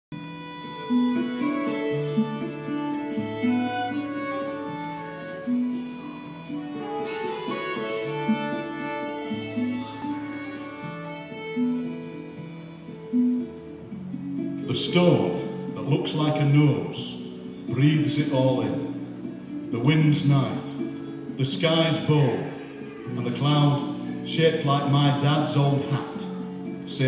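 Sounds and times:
acoustic band playing slow tune: 0:00.1 - 0:27.0.

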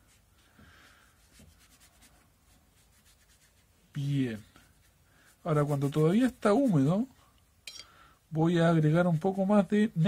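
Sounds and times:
hand rubbing paper: 0:00.0 - 0:07.1.

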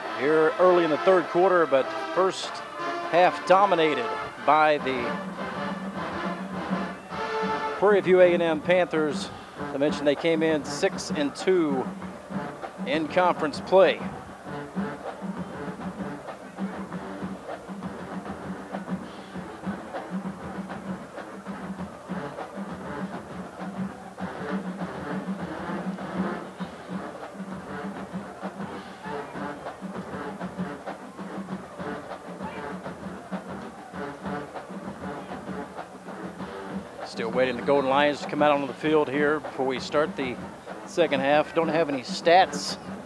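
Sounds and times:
marching band playing: 0:00.0 - 0:43.0.

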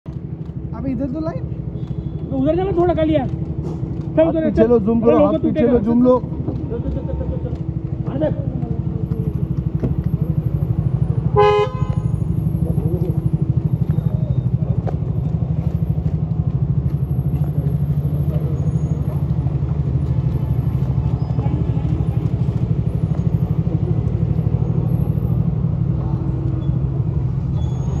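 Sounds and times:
car engine running: 0:00.1 - 0:27.4.

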